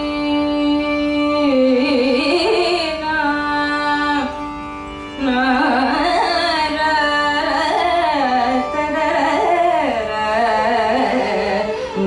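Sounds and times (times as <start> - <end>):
woman singing: 0.0 - 4.4, 5.2 - 12.0
violin: 0.0 - 12.0.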